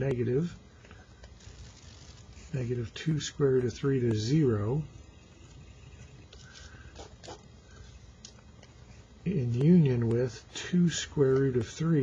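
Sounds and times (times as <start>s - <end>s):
pen scratching on paper: 5.4s - 7.5s.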